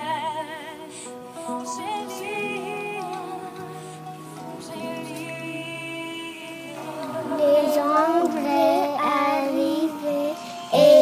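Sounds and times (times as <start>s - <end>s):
child singing slow melody: 4.6s - 11.0s.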